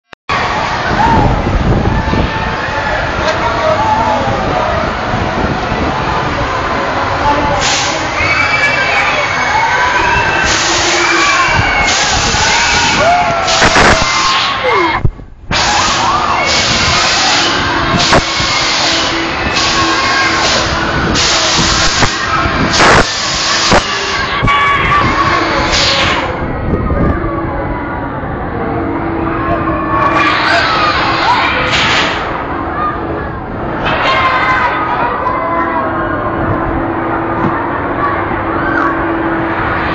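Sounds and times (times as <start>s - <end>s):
dense rush of noise: 0.3s - 39.9s.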